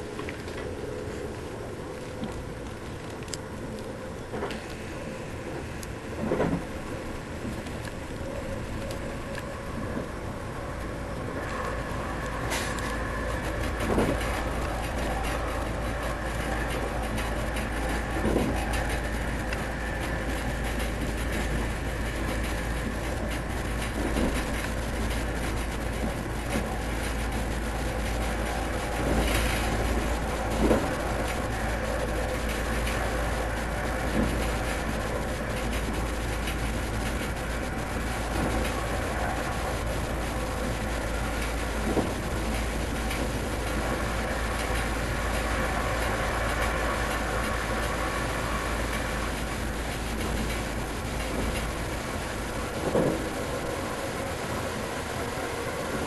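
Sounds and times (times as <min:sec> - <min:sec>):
train running rumble: 0:00.0 - 0:56.0.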